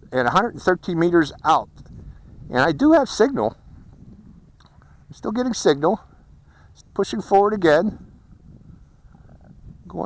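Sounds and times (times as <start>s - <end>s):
man speaking: 0.0s - 1.7s, 2.5s - 3.6s, 5.1s - 6.1s, 6.8s - 8.0s
wind rumble on microphone: 0.0s - 10.0s.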